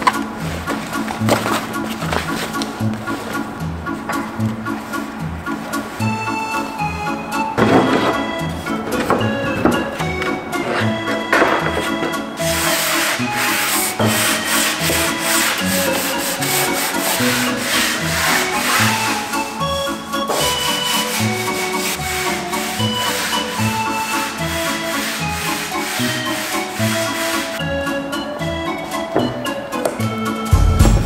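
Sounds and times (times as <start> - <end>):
background music with steady beat: 0.0 - 31.0
sanding block rubbing wood: 10.6 - 19.6, 20.3 - 27.6.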